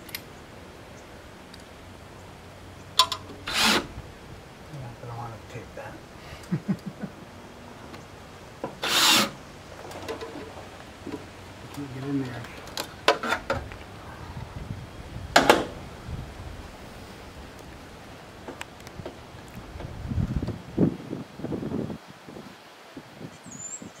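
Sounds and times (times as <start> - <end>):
scraping and rubbing of metal flashing: 3.0 - 3.9, 8.7 - 11.2.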